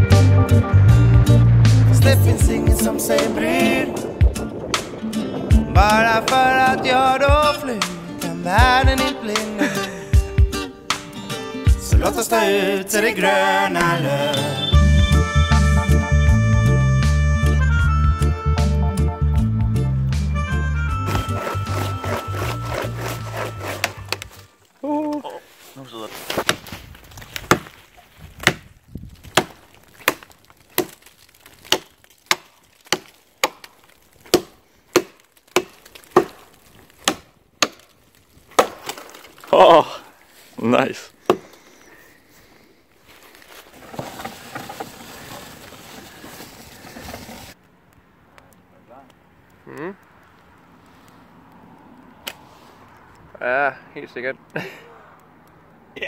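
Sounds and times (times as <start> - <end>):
background music: 0.0 - 24.4
wood cracking: 1.9 - 10.1, 21.0 - 50.8
blade chopping branch: 21.1 - 24.5, 26.2 - 39.6.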